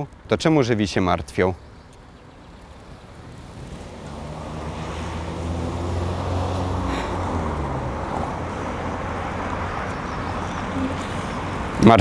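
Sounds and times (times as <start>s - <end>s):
vehicle engine hum: 1.2s - 12.0s.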